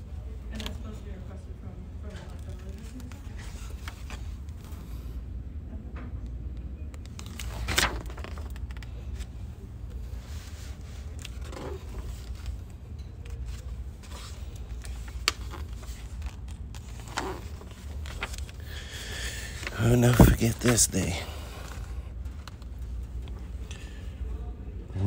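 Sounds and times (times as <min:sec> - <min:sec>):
low room rumble: 0:00.0 - 0:25.0
magazine pages turning: 0:00.4 - 0:01.0, 0:02.1 - 0:04.8, 0:06.9 - 0:24.0.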